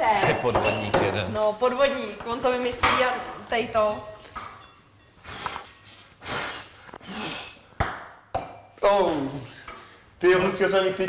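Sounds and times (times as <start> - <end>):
breathy exhalations: 5.2 - 7.8.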